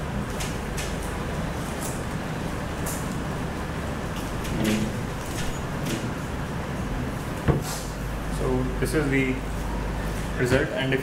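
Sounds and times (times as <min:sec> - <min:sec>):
sound system hum and hiss: 0:00.0 - 0:11.0.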